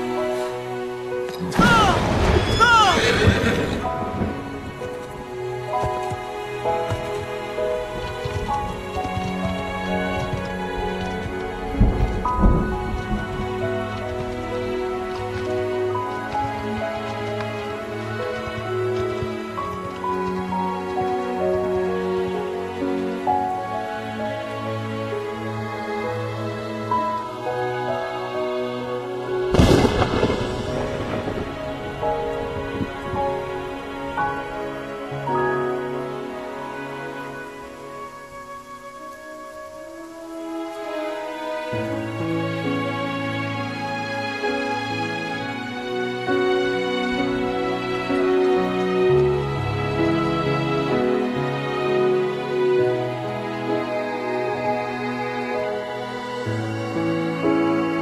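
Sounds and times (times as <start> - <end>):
heavy rain falling: 0.0 - 58.0
orchestral film score: 0.0 - 58.0
thunder clap rumbling: 1.4 - 22.2, 29.4 - 35.7.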